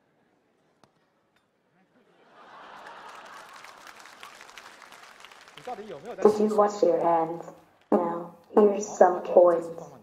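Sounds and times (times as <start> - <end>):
faint audience applause: 2.2 - 7.9.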